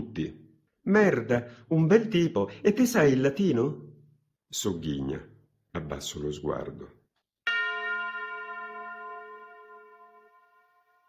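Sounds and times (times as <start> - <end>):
bell-like chime ringing: 7.4 - 11.0.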